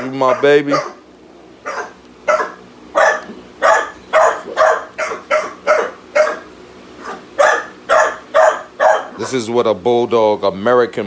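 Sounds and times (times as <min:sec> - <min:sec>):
dog barking: 0:00.0 - 0:01.0, 0:01.6 - 0:09.4.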